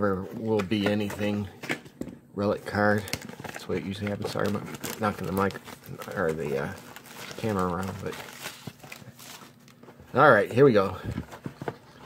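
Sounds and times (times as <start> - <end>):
plastic wrap crinkling: 2.6 - 10.8.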